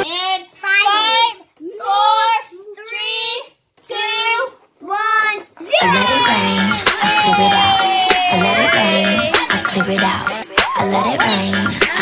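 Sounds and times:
children singing a chant: 5.7s - 12.0s.

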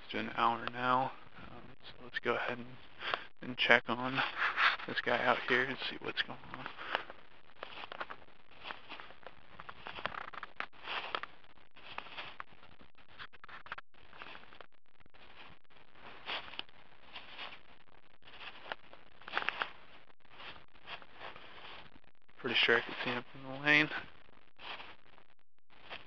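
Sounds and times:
footsteps in dry grass and leaves: 4.0s - 25.1s, 25.7s - 26.0s.

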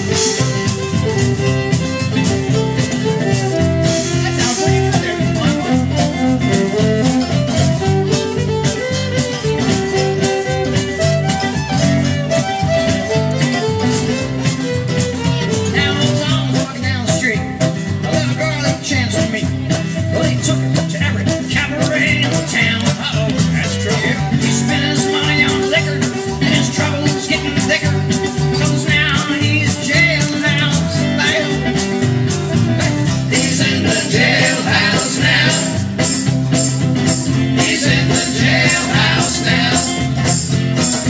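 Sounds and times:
fiddle melody: 0.0s - 16.9s
resonator guitar melody: 0.0s - 41.0s
strummed guitars: 0.0s - 41.0s
upright bass: 0.0s - 41.0s.

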